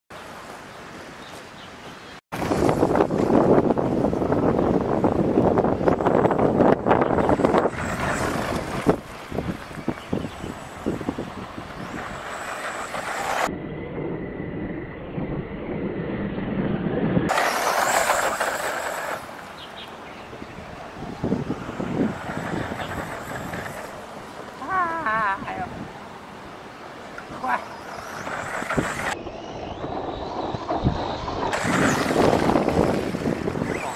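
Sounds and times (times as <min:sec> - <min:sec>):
rc truck motor and tyres rushing: 0:00.2 - 0:33.9.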